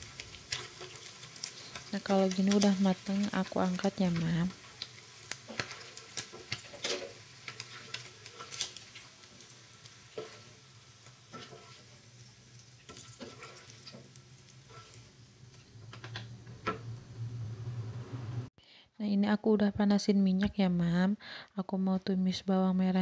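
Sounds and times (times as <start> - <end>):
utensils clicking and scraping pan: 0.0 - 12.0, 12.9 - 16.2
oil sizzling: 0.0 - 18.5
low hum: 16.3 - 18.5.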